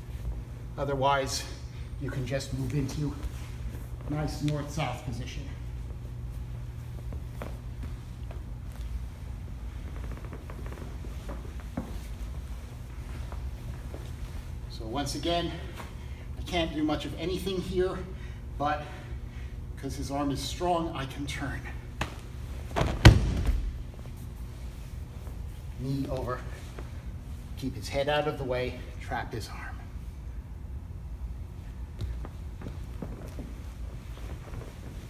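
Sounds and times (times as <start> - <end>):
steady low hum: 0.0 - 35.0
rustling on a foam mat: 5.8 - 14.7
body thudding on mat: 22.0 - 24.0.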